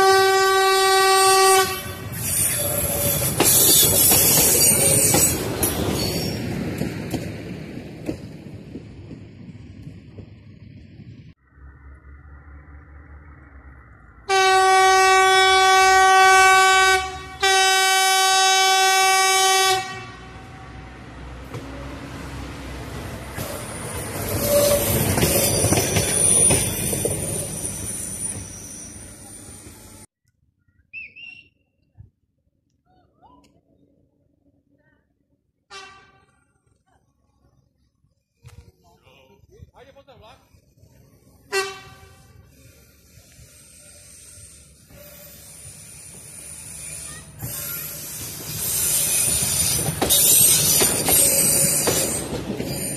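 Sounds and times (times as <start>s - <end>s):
railcar horn blasts: 0.0s - 2.2s, 14.3s - 21.0s, 35.7s - 36.4s, 41.5s - 42.6s
railcar engine and wheels rumbling: 0.0s - 30.1s, 31.0s - 52.9s
high wheel squeal: 2.0s - 6.5s, 23.4s - 30.1s, 40.6s - 52.9s.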